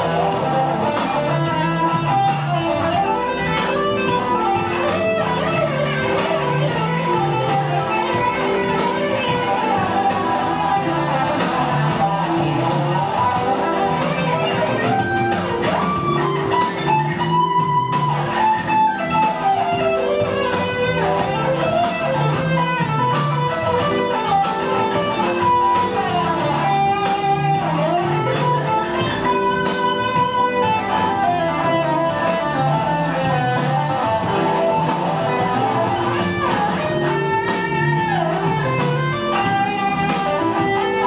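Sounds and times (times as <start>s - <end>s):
electric guitar melody: 0.0s - 41.0s.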